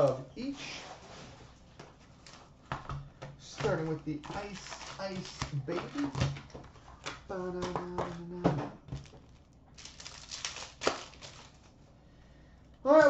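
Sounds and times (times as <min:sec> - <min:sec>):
foil packs clicking and crinkling: 0:03.4 - 0:11.7
wrapper torn open: 0:04.2 - 0:06.2, 0:08.9 - 0:11.7.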